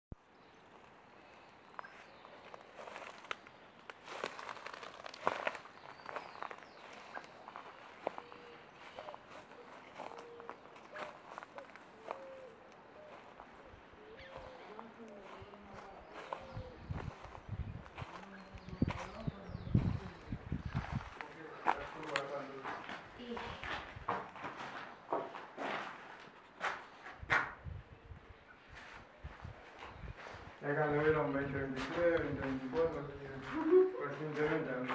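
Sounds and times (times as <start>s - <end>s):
footsteps through dry undergrowth: 0.6s - 27.0s, 28.7s - 34.9s
twigs and leaves crackling underfoot: 0.6s - 27.0s.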